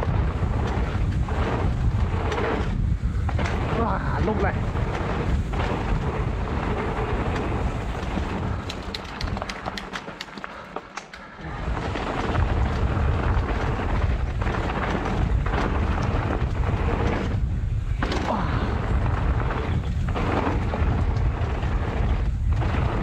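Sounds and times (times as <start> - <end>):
wind buffeting microphone: 0.0 - 10.4, 11.3 - 23.0
tyre and trail rumble: 0.0 - 23.0
sharp ticks and clicks: 7.2 - 11.4.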